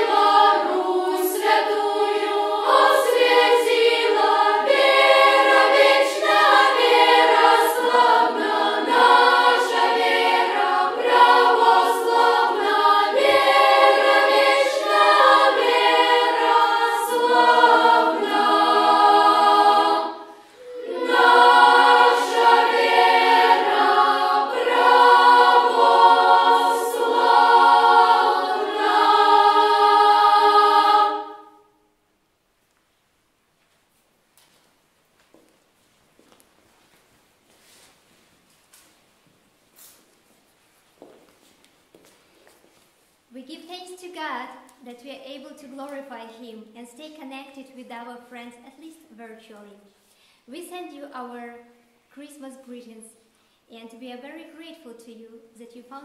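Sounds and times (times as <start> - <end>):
children's choir singing a cappella: 0.0 - 31.9.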